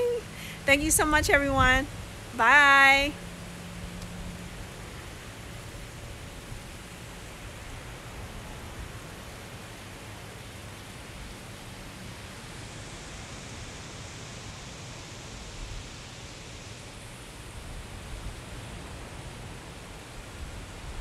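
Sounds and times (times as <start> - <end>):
constant outdoor hiss: 0.0 - 21.0.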